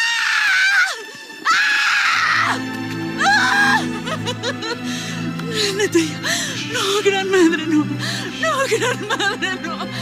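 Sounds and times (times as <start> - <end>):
woman screaming: 0.0 - 2.6, 3.2 - 4.0.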